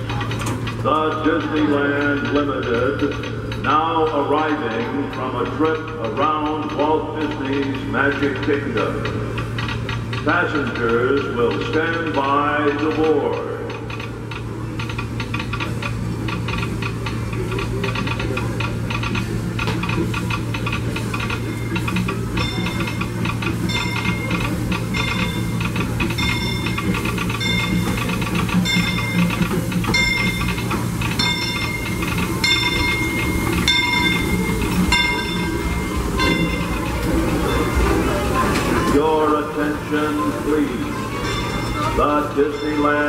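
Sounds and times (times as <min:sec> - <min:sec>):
locomotive bell ringing: 0:00.0 - 0:43.0
train running rumble: 0:00.0 - 0:43.0.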